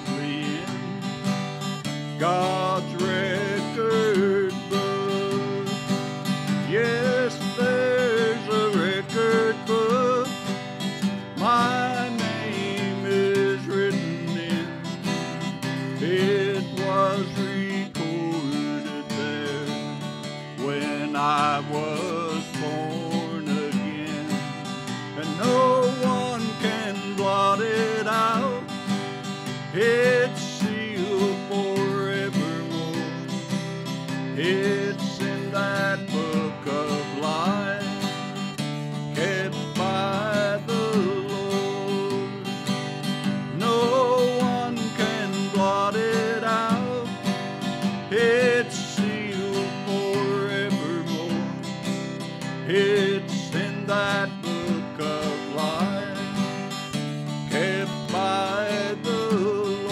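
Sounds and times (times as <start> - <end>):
strummed acoustic guitar: 0.0 - 59.9.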